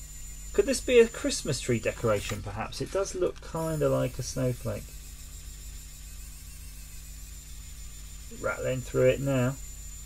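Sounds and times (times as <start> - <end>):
motor humming with high whine: 0.0 - 10.0.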